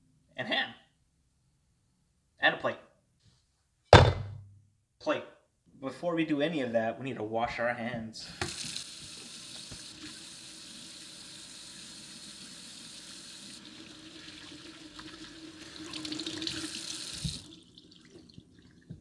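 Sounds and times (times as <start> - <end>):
tap running into steel sink: 8.4 - 8.8.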